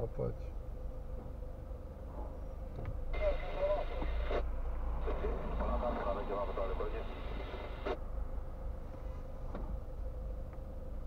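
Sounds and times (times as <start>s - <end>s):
car idling: 0.0s - 11.0s
faint steady hum: 0.0s - 11.0s.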